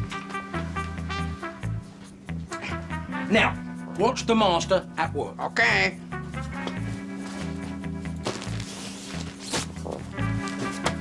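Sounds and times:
light background music: 0:00.0 - 0:11.0
bedding rustling: 0:06.4 - 0:11.0.

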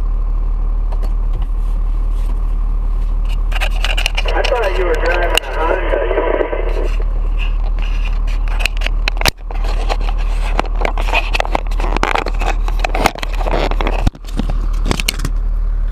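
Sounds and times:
heavy machine engine running: 0:00.0 - 0:15.9.

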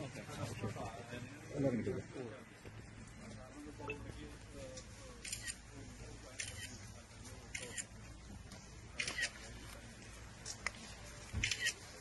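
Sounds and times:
faint murmuring voices: 0:00.0 - 0:12.0
camera shutter clicking: 0:11.4 - 0:11.8.

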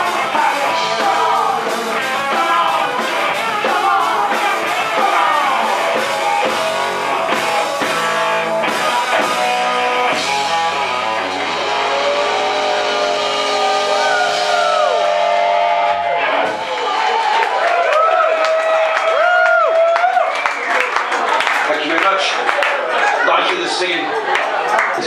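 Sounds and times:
bending electric guitar notes: 0:00.0 - 0:16.8
bass: 0:00.0 - 0:23.2
drums: 0:00.0 - 0:25.0.

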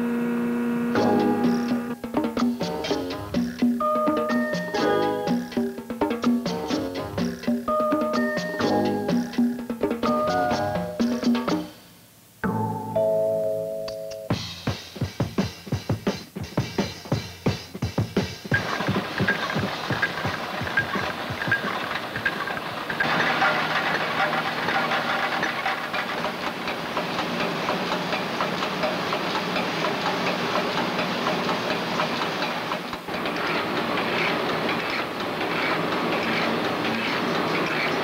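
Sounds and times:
machinery hum: 0:00.0 - 0:03.4
machinery clicking and clattering: 0:18.4 - 0:38.0.

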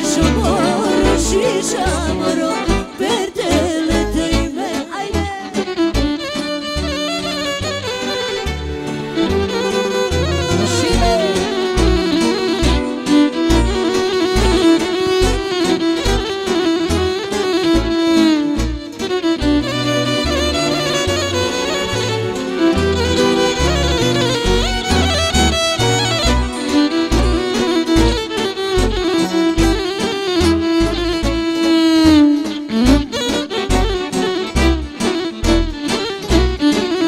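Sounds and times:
electric violin melody: 0:00.0 - 0:37.0
folk band playing: 0:00.0 - 0:37.0.

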